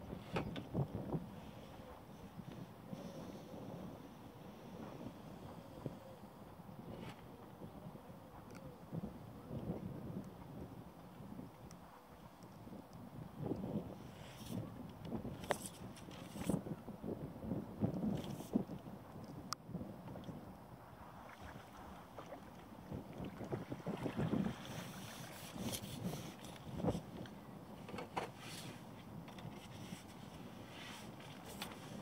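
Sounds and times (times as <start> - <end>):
wind gusting on microphone: 0.0 - 11.6, 12.5 - 32.0.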